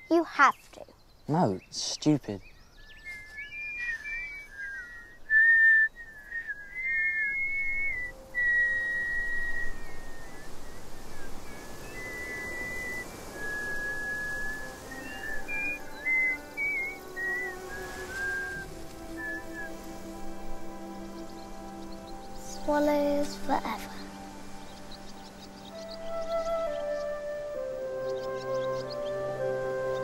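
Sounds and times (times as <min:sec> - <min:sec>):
children whistling: 0:03.1 - 0:19.9
soft music with low notes: 0:07.4 - 0:30.0.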